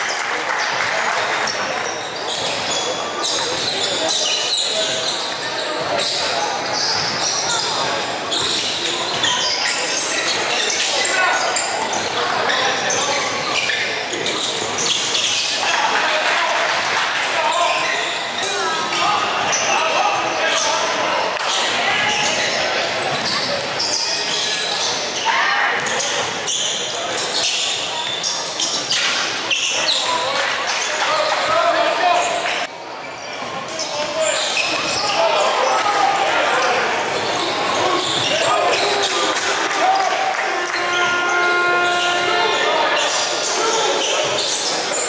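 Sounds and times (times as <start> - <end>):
indistinct voices: 33.5 - 45.0.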